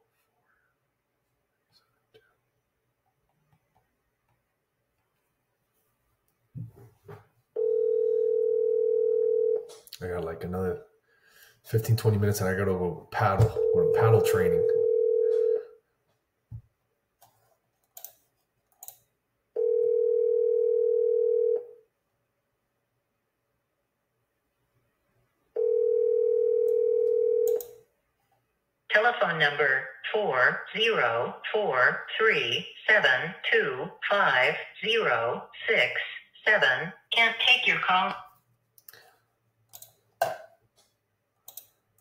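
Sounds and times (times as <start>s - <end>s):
phone ringback tone: 7.6s - 9.7s, 13.4s - 15.8s, 19.6s - 21.8s, 25.6s - 27.6s.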